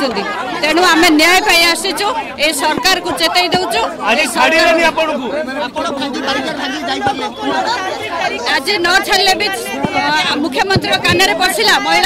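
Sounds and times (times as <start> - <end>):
woman talking: 0.0 - 3.8, 8.5 - 12.0
chatter of voices: 0.0 - 12.0.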